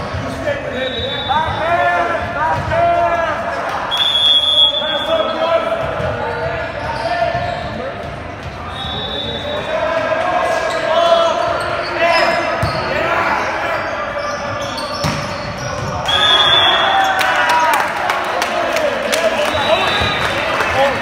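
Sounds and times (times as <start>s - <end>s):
referee's whistle: 0.7s - 1.8s, 3.9s - 5.5s, 8.6s - 9.7s, 13.8s - 17.1s, 19.4s - 20.4s
players and spectators shouting: 8.6s - 15.0s, 15.6s - 21.0s
volleyball hits echoing: 15.0s - 16.6s.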